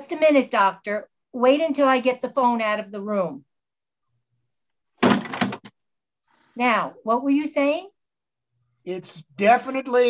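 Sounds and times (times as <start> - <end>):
door closing thud and click: 5.0 - 5.8.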